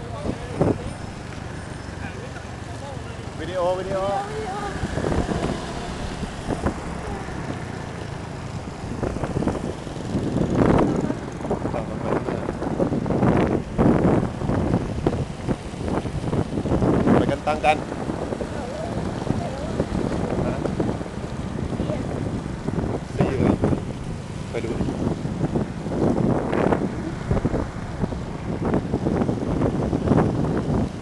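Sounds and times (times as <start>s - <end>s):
motor scooters running: 0.0s - 31.0s
wind buffeting microphone: 0.0s - 31.0s.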